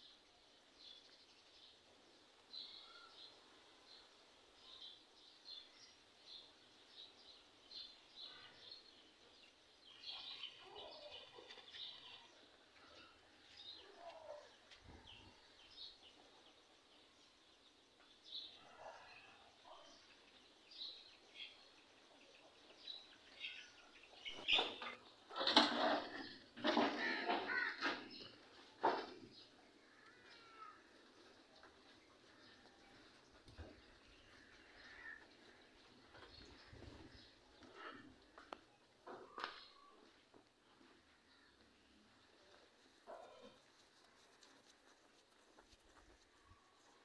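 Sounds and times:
faint bird chirps: 0:02.7 - 0:03.2, 0:18.5 - 0:20.4.

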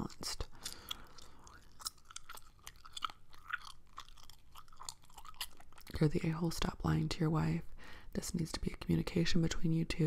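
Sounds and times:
gum chewing mouth clicks: 0:00.0 - 0:06.1.

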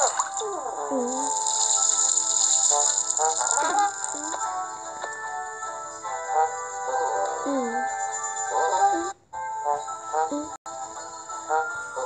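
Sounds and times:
children's app background music: 0:00.0 - 0:12.0.

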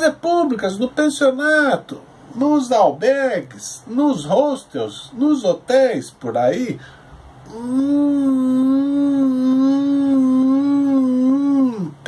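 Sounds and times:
man humming: 0:07.4 - 0:12.0.

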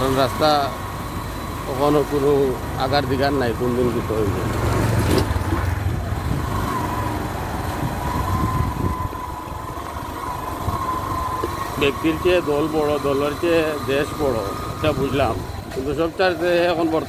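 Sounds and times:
auto-rickshaw engine passing: 0:00.0 - 0:17.0.

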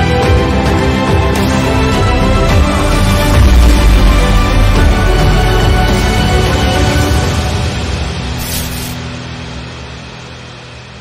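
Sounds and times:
low soundtrack drone: 0:00.0 - 0:11.0.

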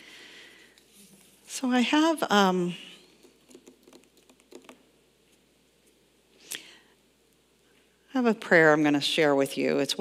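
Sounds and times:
faint irregular clicks and taps: 0:03.1 - 0:04.8.

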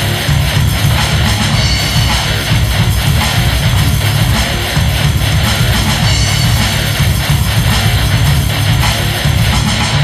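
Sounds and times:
instrumental heavy metal music: 0:00.0 - 0:10.0.

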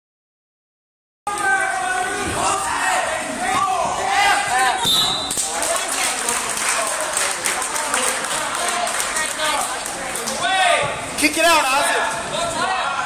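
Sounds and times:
spectators and coaches calling out: 0:01.3 - 0:13.0.

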